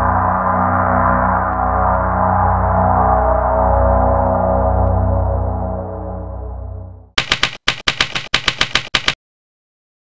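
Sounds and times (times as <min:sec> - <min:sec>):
ambient synth music: 0:00.0 - 0:07.2
typewriter key strikes: 0:07.2 - 0:09.2.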